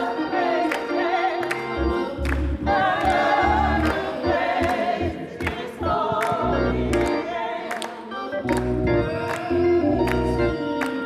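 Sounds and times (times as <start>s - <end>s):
women's choir singing gospel: 0.0s - 11.0s.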